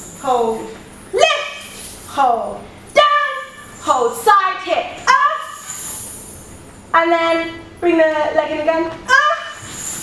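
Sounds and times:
woman's wordless sliding calls: 9.1 - 10.0.

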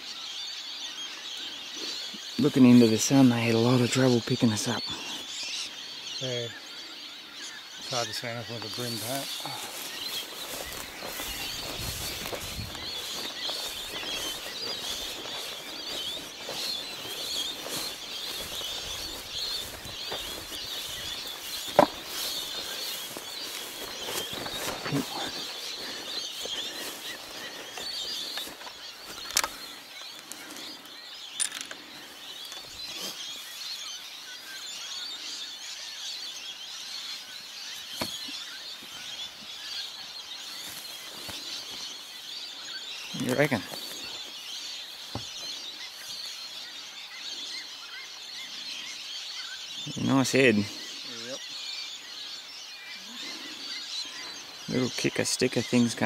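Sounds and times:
high chirping: 1.1 - 51.5
footsteps through dry grass: 7.8 - 35.6, 36.8 - 47.6.

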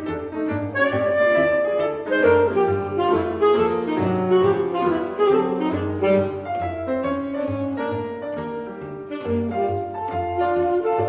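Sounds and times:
alto saxophone: 0.0 - 11.0
piano accompaniment: 0.0 - 11.0.

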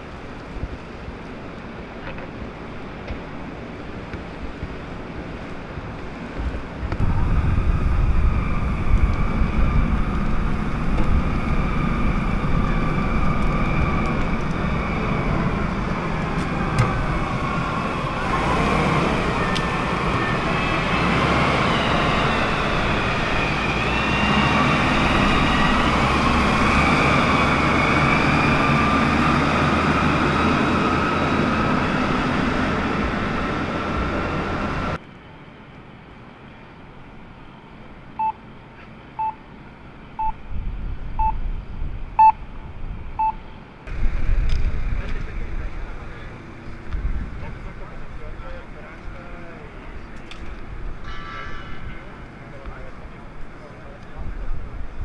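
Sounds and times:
forklift engines rumbling: 0.0 - 55.0
short beeps: 38.2 - 38.4, 39.2 - 39.4, 40.2 - 40.4, 41.2 - 41.4, 42.2 - 42.4, 43.2 - 43.5.

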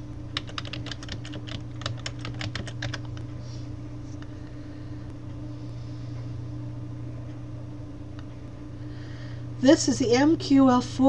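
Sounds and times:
steady low hum: 0.0 - 11.0
computer keyboard typing: 0.3 - 3.2.

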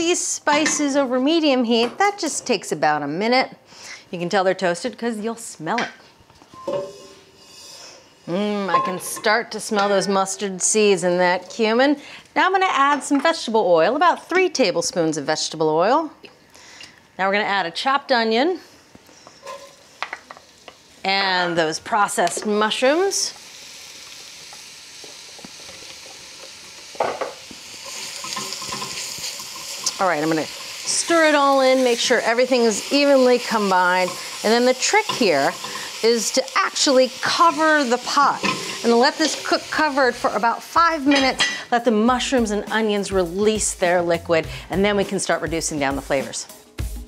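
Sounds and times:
oil sizzling in a pot: 6.1 - 15.6, 17.8 - 46.9
seeds sliding in a metal pot: 6.9 - 8.4, 33.6 - 36.2
soft background music: 41.9 - 47.0.

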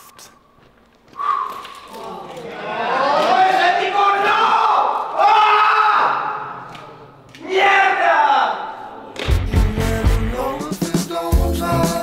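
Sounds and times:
music with heavy beat: 9.3 - 12.0.

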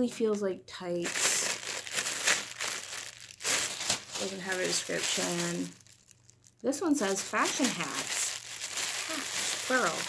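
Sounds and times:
plastic packages crinkling: 1.0 - 10.0.

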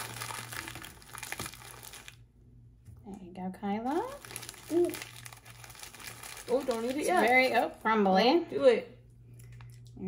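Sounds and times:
wrapper crinkling and crunching: 0.0 - 2.3, 3.9 - 7.9.

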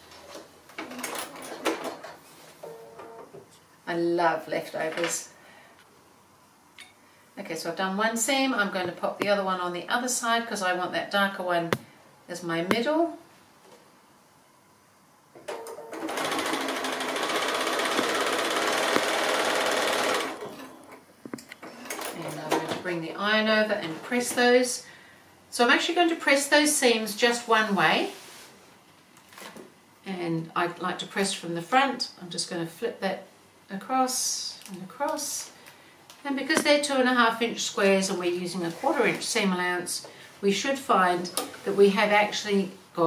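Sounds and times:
sewing machine stitching: 15.9 - 20.8.

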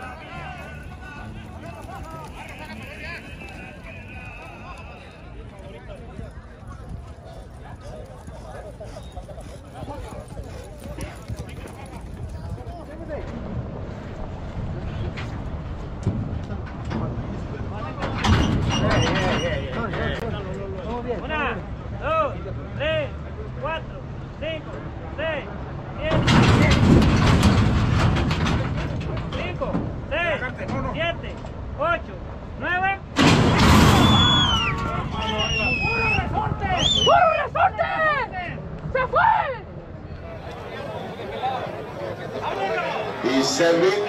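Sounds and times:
wind buffeting microphone: 5.3 - 20.3.

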